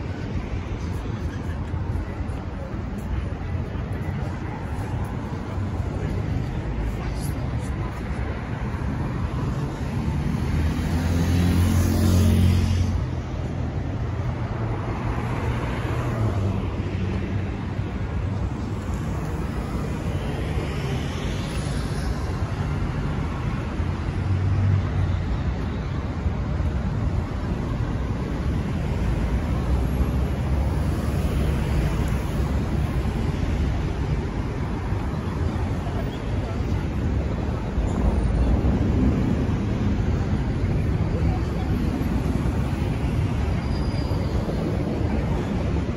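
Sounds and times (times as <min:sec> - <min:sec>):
cars driving past: 0:05.4 - 0:45.9
loud vehicle passing: 0:10.0 - 0:13.0.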